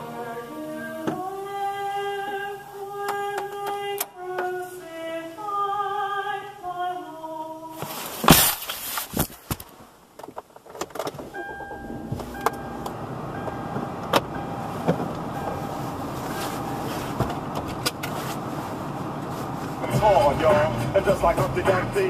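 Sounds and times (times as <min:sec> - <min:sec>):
clicks and knocks in car: 0:09.2 - 0:15.6, 0:16.4 - 0:18.2
car engine running: 0:11.2 - 0:22.0
radio music: 0:19.8 - 0:22.0.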